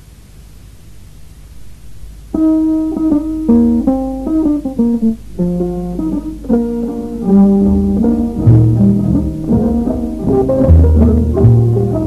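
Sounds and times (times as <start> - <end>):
low notes: 2.4 - 12.0
plucked string instrument melody: 2.4 - 12.0.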